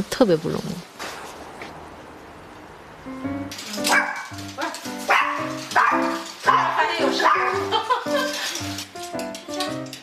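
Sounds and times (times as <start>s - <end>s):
small dog barking: 3.8s - 7.7s.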